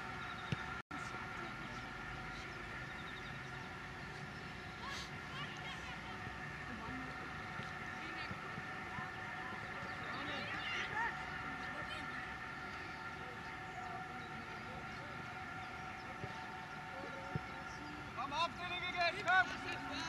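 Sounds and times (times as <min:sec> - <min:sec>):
steady high-toned hum: 0:00.0 - 0:20.0
distant shouts of footballers: 0:04.7 - 0:20.0.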